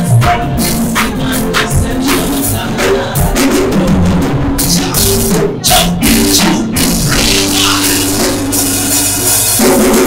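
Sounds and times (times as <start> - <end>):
drum kit: 0.0 - 10.0
steady bass line: 0.0 - 10.0.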